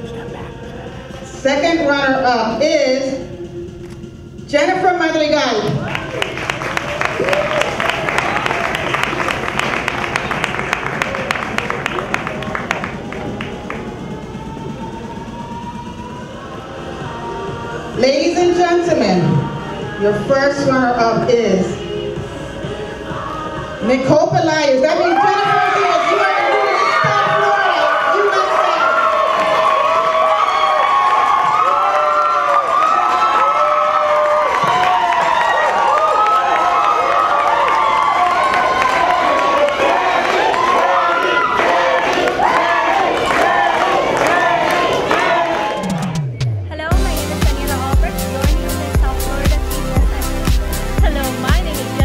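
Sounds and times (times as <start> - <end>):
cheering: 5.6 - 14.8, 24.8 - 46.6
audience applause: 5.8 - 14.8, 25.8 - 46.3.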